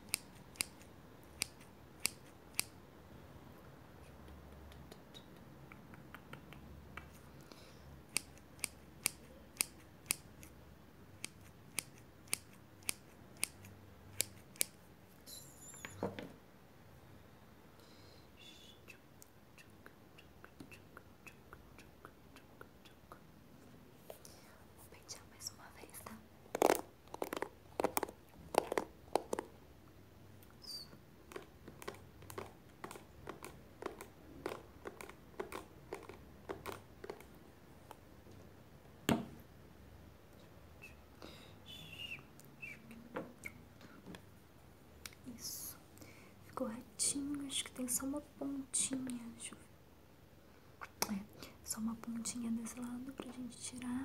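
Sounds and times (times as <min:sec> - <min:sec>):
scissors snipping: 0:00.0 - 0:02.7, 0:08.1 - 0:10.5, 0:11.2 - 0:14.8
handling noise: 0:26.4 - 0:29.5.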